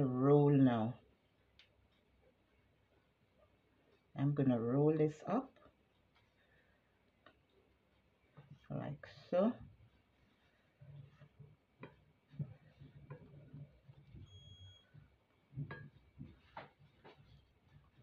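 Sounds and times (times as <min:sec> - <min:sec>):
dough rolled by hand: 0:05.4 - 0:18.0
faint high beep: 0:14.2 - 0:14.9.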